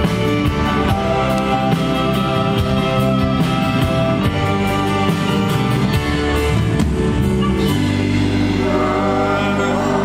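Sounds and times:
acoustic and electric guitars: 0:00.0 - 0:10.0
violin: 0:00.0 - 0:10.0
voices singing: 0:08.1 - 0:10.0.

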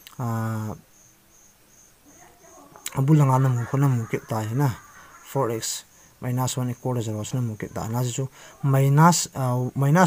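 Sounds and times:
cricket chirping: 0:00.0 - 0:10.0
man saying filler vowel: 0:02.9 - 0:06.8.

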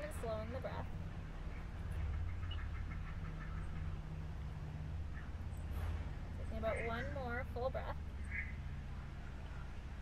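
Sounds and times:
low outdoor hum: 0:00.0 - 0:10.0
ducks quacking: 0:01.4 - 0:04.2.

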